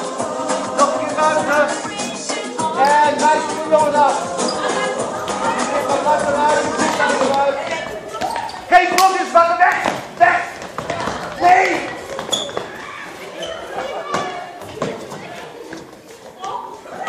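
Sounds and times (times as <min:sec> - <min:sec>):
children calling out and shrieking: 0:11.0 - 0:15.6.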